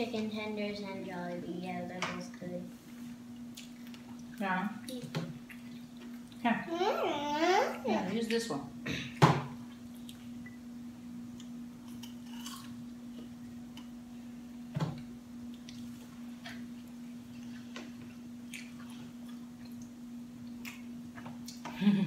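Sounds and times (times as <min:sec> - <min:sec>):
steady hum: 0:00.0 - 0:22.0.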